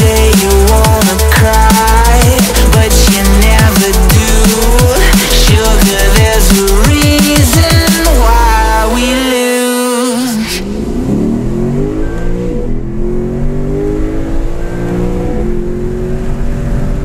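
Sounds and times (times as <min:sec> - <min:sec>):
electronic music: 0:00.0 - 0:12.8
car engine accelerating hard: 0:10.1 - 0:17.0.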